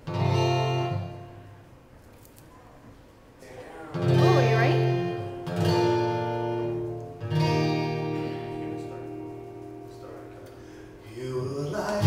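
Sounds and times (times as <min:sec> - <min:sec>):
acoustic guitar chord strummed: 0:00.0 - 0:01.8, 0:03.9 - 0:12.0.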